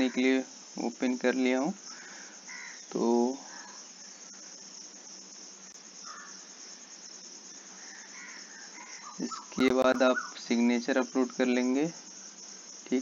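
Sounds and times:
voice: 0:00.0 - 0:01.8, 0:02.9 - 0:03.4, 0:09.2 - 0:12.0
high-pitched chirring hiss: 0:00.0 - 0:13.0.

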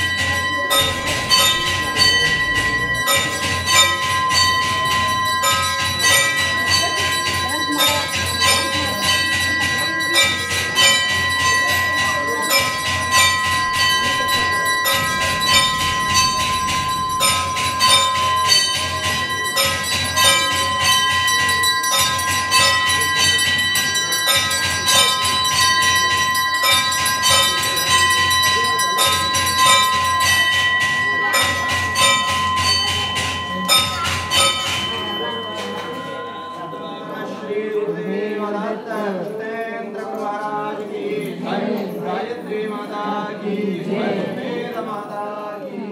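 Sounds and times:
bells rung rapidly: 0:00.0 - 0:40.0.

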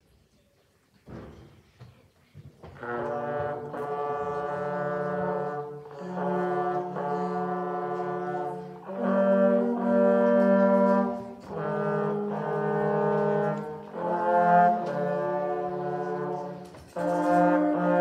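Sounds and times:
trombones playing in harmony: 0:02.8 - 0:18.0.

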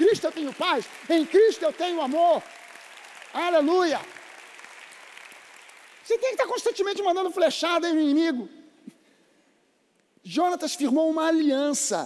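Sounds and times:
congregation applauding: 0:00.0 - 0:07.4.

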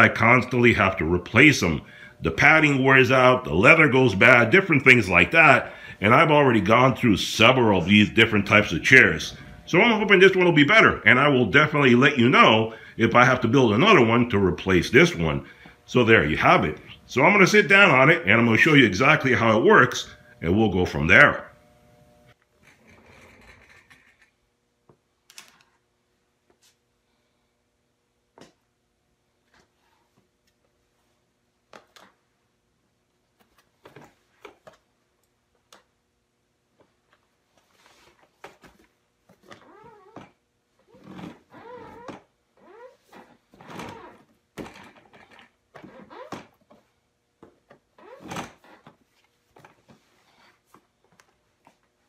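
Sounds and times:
chair clicks and creaks: 0:22.6 - 0:24.4, 0:31.7 - 0:32.2, 0:33.4 - 0:34.9, 0:36.8 - 0:52.0.

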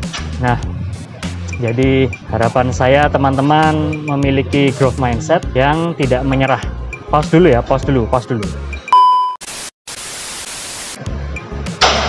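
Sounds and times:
short loud beep: 0:08.9 - 0:09.4
tv static hiss: 0:09.4 - 0:11.0.

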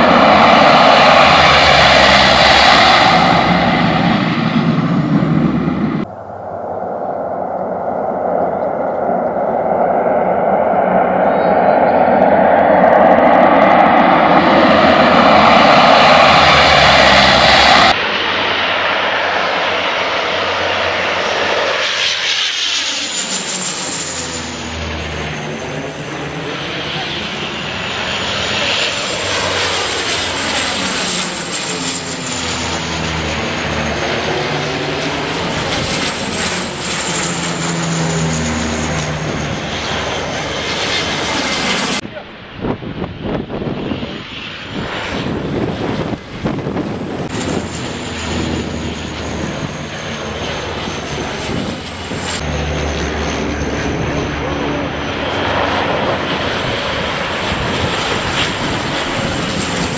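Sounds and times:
loud steady roar: 0:00.0 - 0:59.9
turboprop planes flying overhead: 0:00.0 - 0:59.9.

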